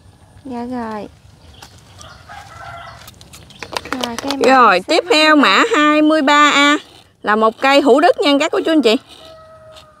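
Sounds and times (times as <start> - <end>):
rooster crowing: 2.0 - 3.1, 8.5 - 10.0.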